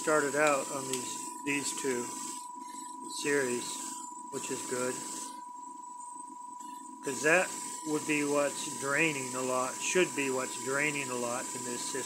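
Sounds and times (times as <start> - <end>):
electric motor whining: 0.0 - 5.4, 6.6 - 12.0.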